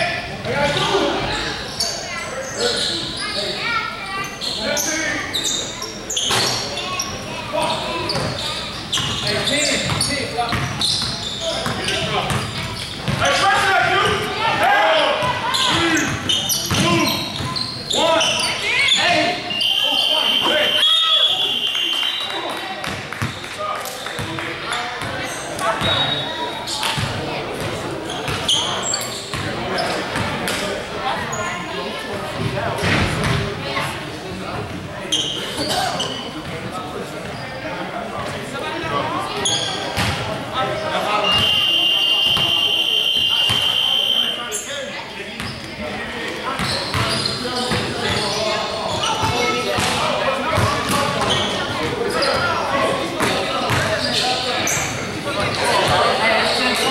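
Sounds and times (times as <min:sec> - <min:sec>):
players calling out: 0:00.0 - 0:30.2, 0:38.0 - 0:56.9
voices echoing in hall: 0:00.0 - 0:56.9
sneaker squeaks: 0:00.7 - 0:13.4, 0:15.2 - 0:30.6, 0:35.1 - 0:36.6, 0:37.2 - 0:37.7, 0:39.2 - 0:45.8, 0:46.4 - 0:56.9.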